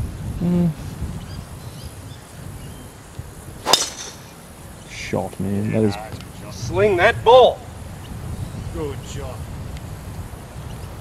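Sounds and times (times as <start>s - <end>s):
golf club striking ball: 3.6s - 4.4s.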